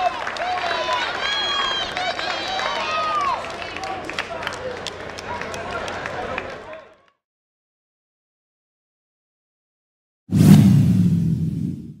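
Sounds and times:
whoosh with deep low tail: 0:10.3 - 0:12.0.

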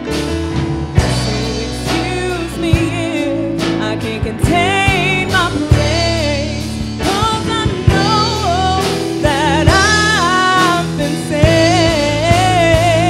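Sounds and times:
drums steady beat: 0:00.0 - 0:13.0
gospel band playing: 0:00.0 - 0:13.0
woman singing: 0:01.0 - 0:13.0.

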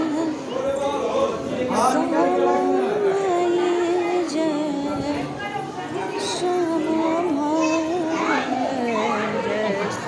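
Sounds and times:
crowd singing a devotional chant: 0:00.0 - 0:10.0.

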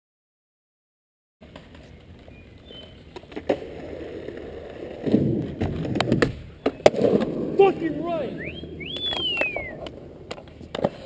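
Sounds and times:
skateboard wheels rolling on concrete: 0:01.4 - 0:11.0.

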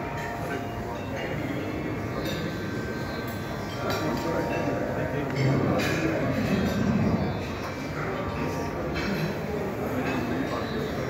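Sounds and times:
indistinct talking: 0:00.0 - 0:11.0
noisy room hubbub: 0:00.0 - 0:11.0.

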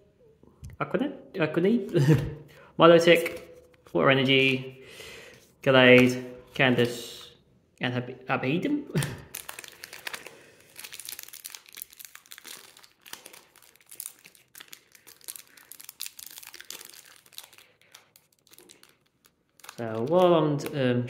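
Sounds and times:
foil wrapper crinkling: 0:09.3 - 0:20.4.

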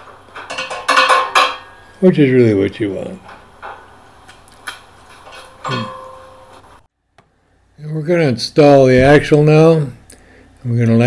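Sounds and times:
metal hand tools clinking: 0:04.6 - 0:06.6.

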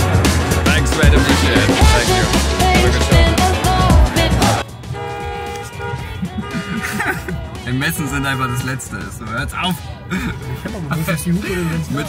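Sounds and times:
car horns honking: 0:00.9 - 0:12.0.

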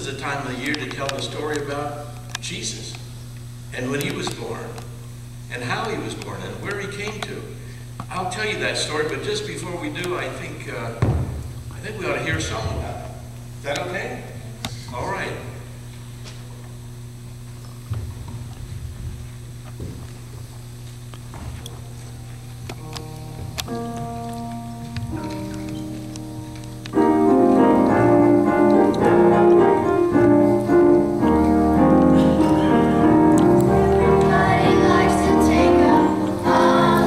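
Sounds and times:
low steady hum: 0:00.0 - 0:37.0
piano playing: 0:21.7 - 0:37.0.

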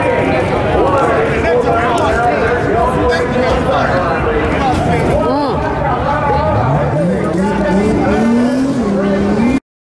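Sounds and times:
crowd chatter: 0:00.0 - 0:09.6
car engine accelerating: 0:04.2 - 0:09.6.

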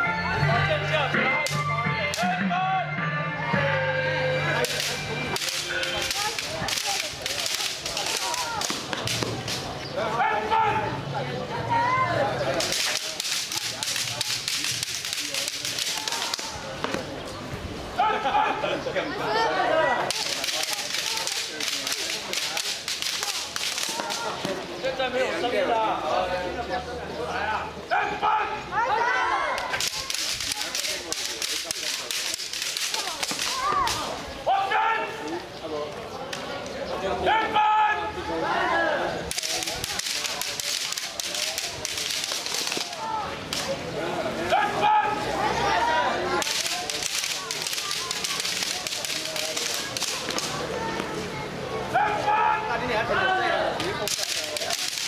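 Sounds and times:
bamboo swords clacking: 0:01.4 - 0:02.3, 0:04.5 - 0:09.8, 0:12.5 - 0:17.1, 0:20.0 - 0:24.6, 0:29.5 - 0:34.2, 0:39.2 - 0:43.8, 0:46.3 - 0:50.7, 0:53.8 - 0:55.0
loud shouts: 0:10.0 - 0:11.0, 0:18.0 - 0:21.5, 0:27.9 - 0:30.9, 0:32.9 - 0:35.3, 0:37.2 - 0:39.2, 0:44.4 - 0:55.0.

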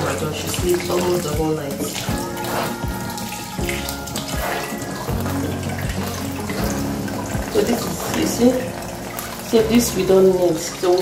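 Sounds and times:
pulp squeezed through sieve: 0:00.0 - 0:09.4
background music: 0:00.0 - 0:11.0
tap running water: 0:00.0 - 0:11.0.

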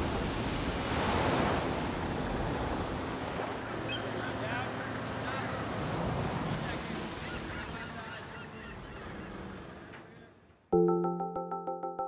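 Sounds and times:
wind: 0:00.0 - 0:10.8.

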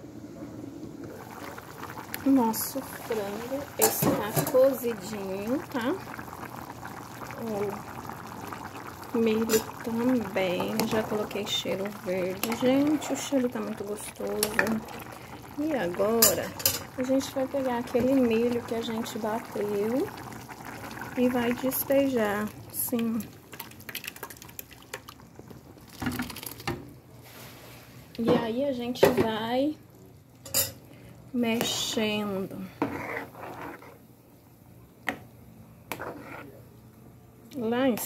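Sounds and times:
broth bubbling in a pot: 0:00.3 - 0:28.0, 0:29.4 - 0:36.8.

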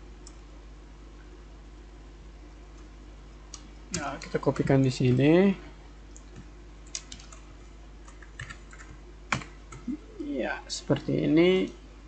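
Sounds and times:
steady low hum: 0:00.0 - 0:12.0
computer keyboard keystrokes: 0:03.5 - 0:04.7, 0:06.1 - 0:07.4, 0:08.0 - 0:09.9.

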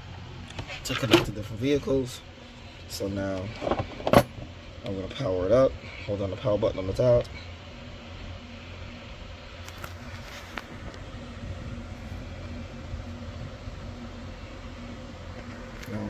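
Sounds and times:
low buzzing hum: 0:00.0 - 0:16.0.

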